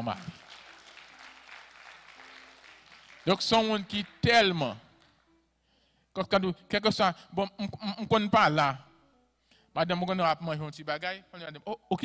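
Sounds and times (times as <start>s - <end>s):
man's amplified voice: 0.0s - 0.4s, 3.2s - 4.9s, 6.2s - 8.9s, 9.8s - 12.0s
faint applause in a hall: 0.0s - 5.3s.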